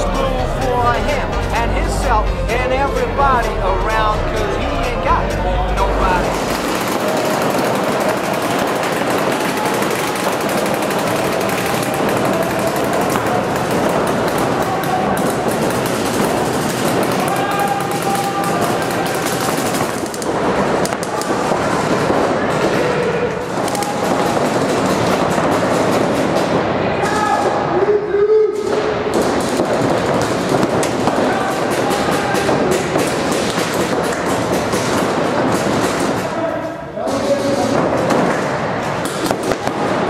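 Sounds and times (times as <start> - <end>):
players shouting: 0.0 - 40.0
paintball markers firing: 6.2 - 26.8, 28.6 - 36.4, 37.1 - 40.0.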